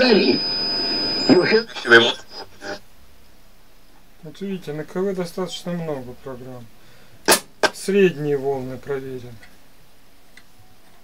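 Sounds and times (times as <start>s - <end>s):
radio static hiss: 0.0s - 3.0s, 7.3s - 9.2s.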